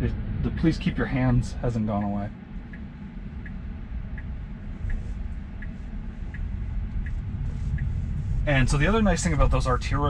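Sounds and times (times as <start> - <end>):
low rumble inside car cabin: 0.0 - 10.0
turn signal ticking: 0.0 - 10.0.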